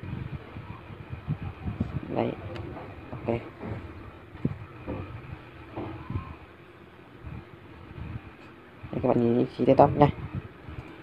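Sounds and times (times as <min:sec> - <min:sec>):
low background hum: 0:00.0 - 0:11.0
faint murmured voice: 0:00.1 - 0:07.5.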